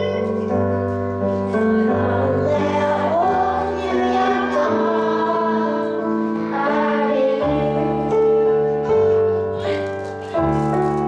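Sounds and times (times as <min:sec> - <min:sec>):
boy singing into a microphone: 0:00.0 - 0:00.8, 0:01.4 - 0:07.9.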